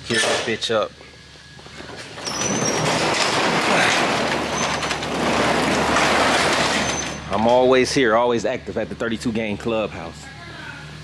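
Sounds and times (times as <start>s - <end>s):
garage door rolling shut: 1.6s - 8.1s.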